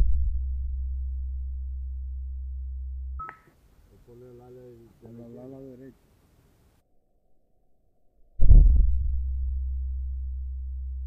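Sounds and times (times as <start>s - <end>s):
low steady rumble: 0.0s - 3.9s, 8.4s - 11.0s
short high beep: 3.2s - 3.4s.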